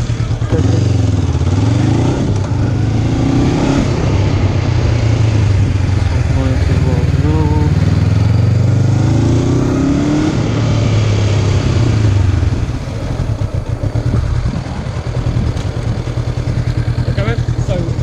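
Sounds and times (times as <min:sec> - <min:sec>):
motorcycle engine running: 0:00.0 - 0:18.0
person speaking: 0:06.2 - 0:07.8.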